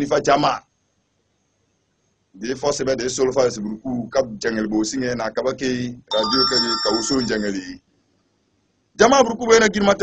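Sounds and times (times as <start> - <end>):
man preaching into microphone: 0.0 - 0.6, 2.4 - 7.8, 9.0 - 10.0
high electronic ringing tones: 6.1 - 7.6.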